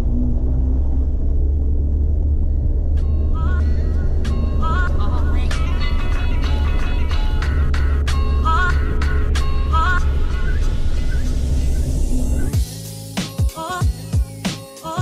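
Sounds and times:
music with regular beat: 12.5 - 15.0.

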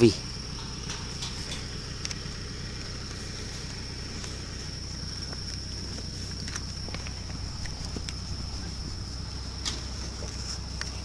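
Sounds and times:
insects high-pitched calling: 0.0 - 11.0
low rumble: 0.1 - 11.0.

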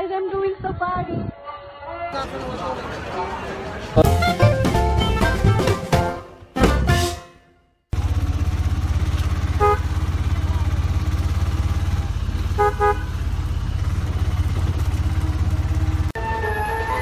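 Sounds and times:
car horn honking: 4.0 - 7.6, 9.3 - 10.8, 12.4 - 13.4
flute-like melody music: 4.0 - 7.6, 16.2 - 17.0
vehicle engine rumbling: 7.9 - 17.0.

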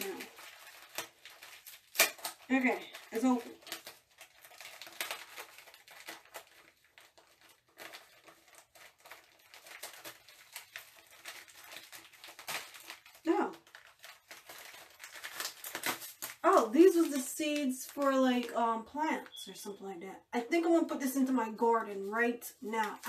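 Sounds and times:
paper packet crinkling: 0.0 - 19.6, 20.8 - 23.0.

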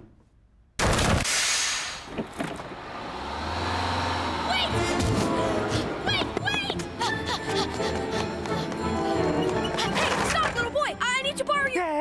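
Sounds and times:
bus engine drone: 1.5 - 10.2.

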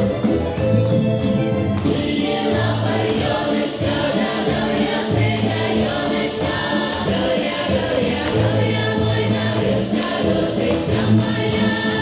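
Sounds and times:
instrumental accompaniment: 0.0 - 12.0
steady percussive beat: 0.0 - 12.0
group of voices singing: 1.8 - 12.0.

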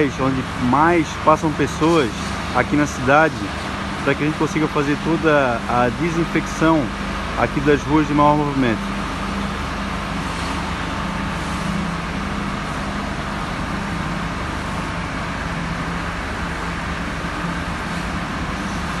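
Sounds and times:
vehicle engine running: 0.0 - 19.0.

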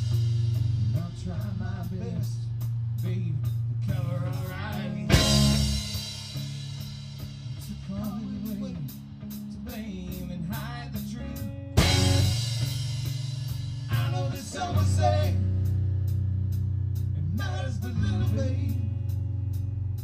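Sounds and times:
hi-hat keeping time: 0.0 - 11.1, 11.8 - 18.4
rock band playing: 0.0 - 20.0.

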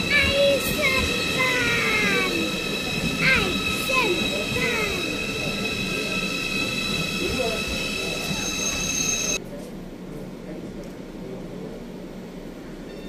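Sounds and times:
high-speed train running whine: 0.0 - 12.9.

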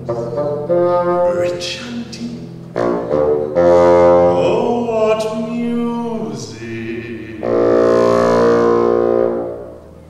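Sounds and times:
bassoon playing low notes: 0.0 - 10.0.

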